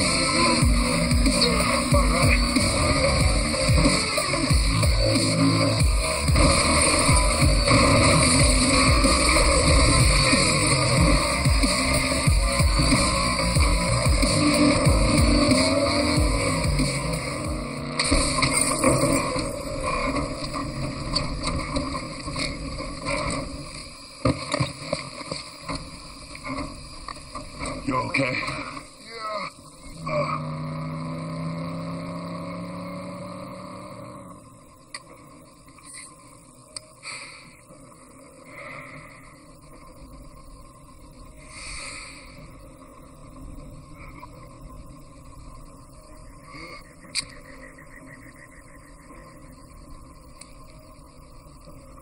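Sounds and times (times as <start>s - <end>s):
action film music score: 0.0s - 24.1s
tyres screeching: 0.0s - 34.3s
car engine: 0.0s - 52.0s.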